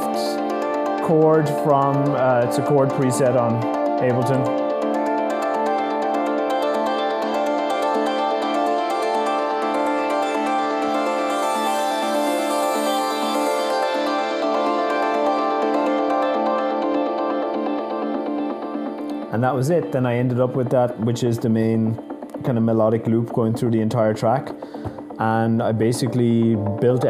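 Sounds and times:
synth keyboard chords loop: 0.0 - 27.0.

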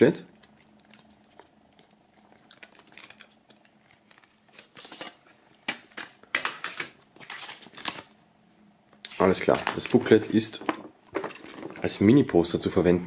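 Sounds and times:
paper rustling: 3.9 - 8.1, 9.1 - 12.0.

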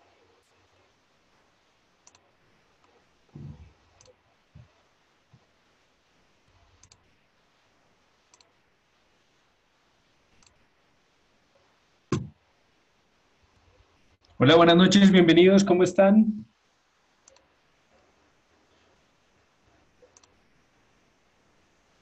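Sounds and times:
computer mouse clicks: 2.0 - 2.2, 6.8 - 7.1, 8.3 - 8.6, 10.3 - 10.6, 17.2 - 17.5, 20.0 - 20.5
dull thumps on desk: 12.1 - 12.4.

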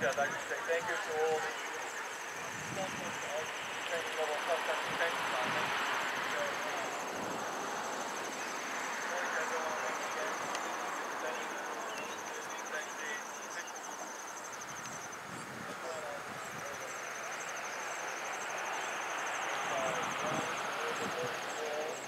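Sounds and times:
insect trilling chirr: 0.0 - 22.0
faint insect ticking: 1.7 - 22.0.

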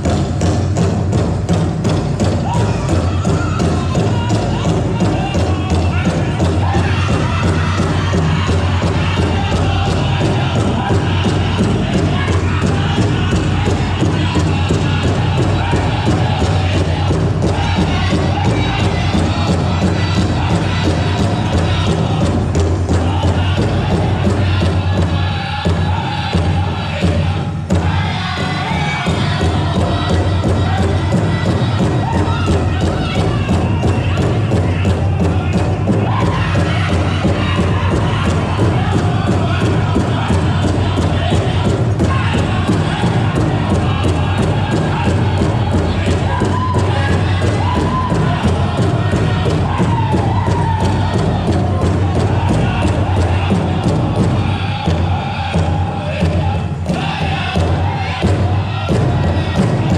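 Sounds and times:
powwow drum beating: 0.0 - 59.9
high-pitched chorus singing: 1.9 - 59.9.

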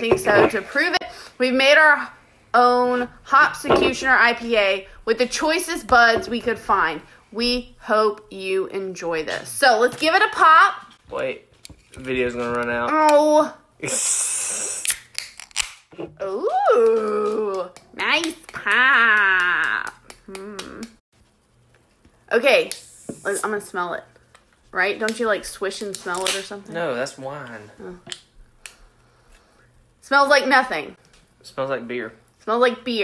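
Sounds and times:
carbonation hissing: 13.7 - 15.2, 21.3 - 30.0.

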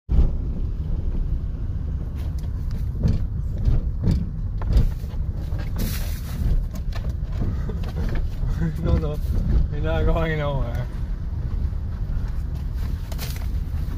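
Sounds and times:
car road noise: 0.1 - 13.9
wind buffeting through window: 0.1 - 13.9
knocks and rustles: 2.1 - 10.0.

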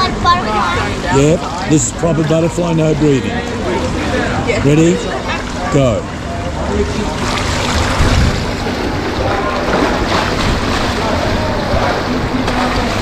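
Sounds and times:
swimmer splashing in pool: 7.2 - 13.0
wind rumble on microphone: 7.7 - 13.0.

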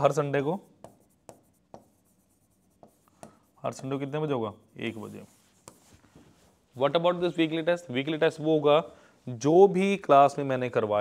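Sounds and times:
pen scratching on a board: 0.1 - 4.0, 4.7 - 6.0.

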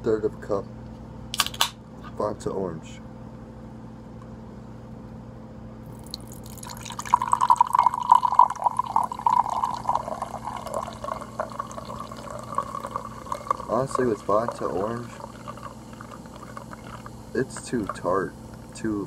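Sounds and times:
soda pouring into a cup: 5.9 - 18.1
carbonation fizzing hiss: 5.9 - 18.9.

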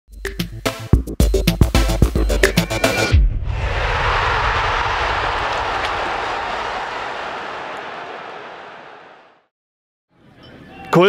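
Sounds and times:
airy rushing whoosh: 3.4 - 7.0.

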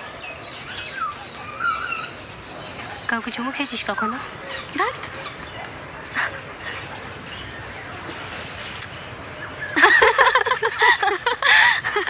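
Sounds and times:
steady high hiss: 0.0 - 12.0
woman's breathy laugh: 9.8 - 12.0.

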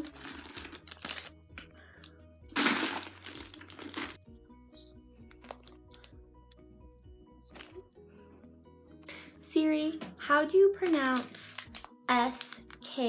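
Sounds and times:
candy wrappers crinkling: 0.0 - 4.2, 5.2 - 6.2, 7.5 - 7.8, 10.7 - 13.0
background music: 0.0 - 13.0.

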